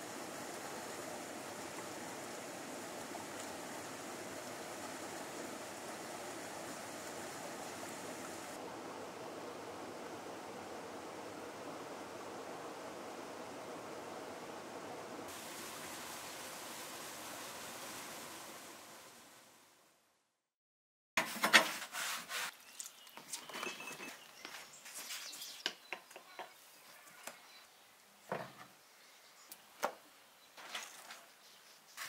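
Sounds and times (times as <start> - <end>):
outdoor hiss: 0.0 - 20.2, 21.2 - 32.0.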